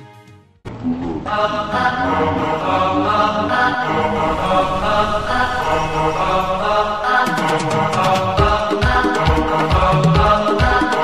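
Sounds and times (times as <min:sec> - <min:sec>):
chanted vocal: 0:00.9 - 0:11.0
sustained accompaniment: 0:01.2 - 0:09.9
drum beats: 0:07.2 - 0:11.0.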